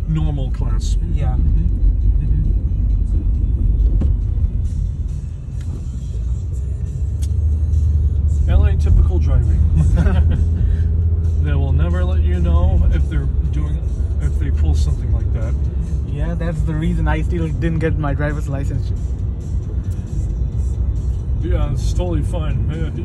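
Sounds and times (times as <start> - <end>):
car cabin road and engine rumble: 0.0 - 23.0.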